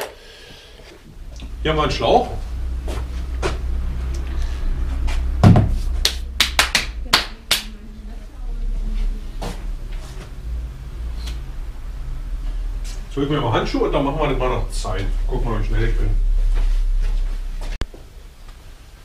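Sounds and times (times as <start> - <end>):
steady low hum: 0.0 - 19.0
heavy thump: 5.0 - 6.0.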